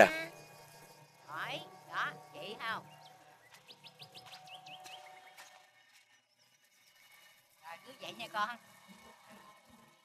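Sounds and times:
bird chirping: 0:00.0 - 0:05.7.

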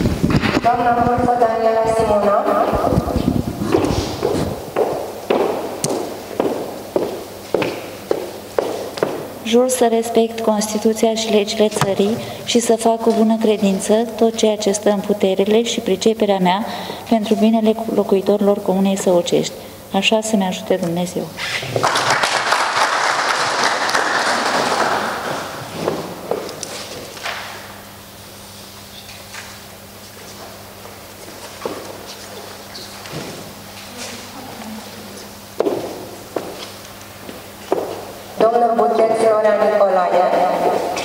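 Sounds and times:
footsteps on hard floor echoing: 0:02.4 - 0:09.4, 0:11.6 - 0:14.0, 0:24.6 - 0:27.6, 0:29.1 - 0:38.2, 0:40.3 - 0:41.0
audience applause: 0:21.7 - 0:25.6.

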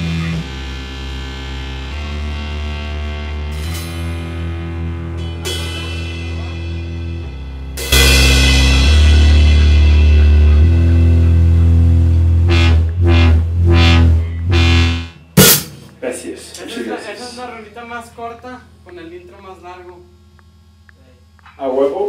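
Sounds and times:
rock band playing live: 0:00.0 - 0:16.0
cymbal crash: 0:03.5 - 0:12.8, 0:13.9 - 0:15.9.

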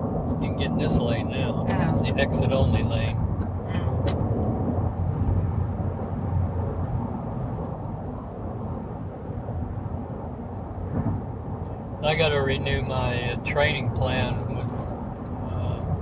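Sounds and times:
car driving rumble from inside: 0:00.0 - 0:16.0.

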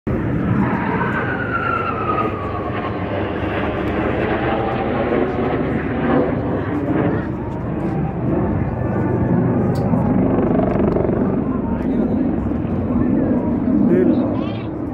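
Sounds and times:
high jet whine falling in pitch: 0:00.1 - 0:14.9
jet engine noise: 0:00.1 - 0:14.9.

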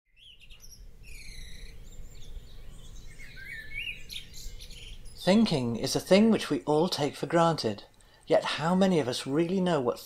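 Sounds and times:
birds chirping and singing: 0:00.1 - 0:08.2.

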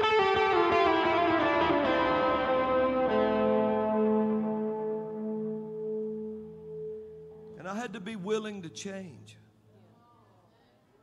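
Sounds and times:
electric guitar note ringing: 0:00.0 - 0:08.8.

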